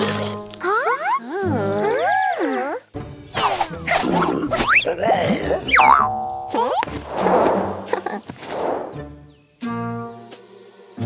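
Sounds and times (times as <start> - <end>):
background music: 0.0 - 11.0
rising and falling pitch glides: 5.7 - 6.8
springy cartoon boings: 5.7 - 6.9
stepped falling tones: 5.7 - 6.9.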